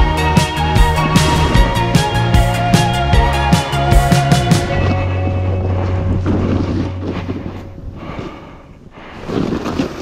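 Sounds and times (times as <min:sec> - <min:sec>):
low hum: 0:00.2 - 0:08.9.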